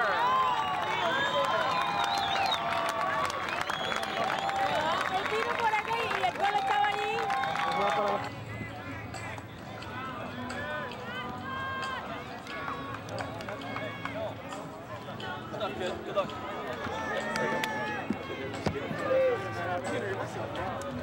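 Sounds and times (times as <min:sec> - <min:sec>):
indistinct chatter of people: 0:00.0 - 0:21.0.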